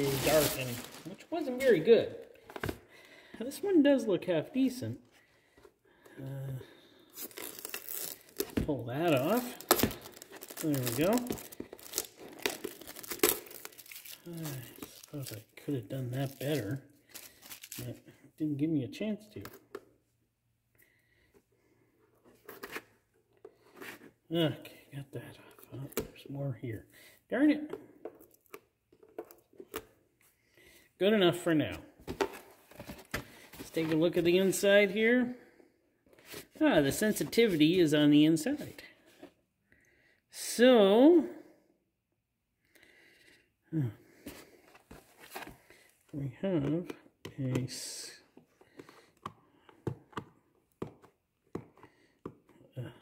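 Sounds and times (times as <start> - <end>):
plastic film crackling peeled off: 0.0 - 1.7, 7.2 - 8.5, 9.1 - 15.4
soft plastic rustles: 0.0 - 2.9, 7.1 - 18.1.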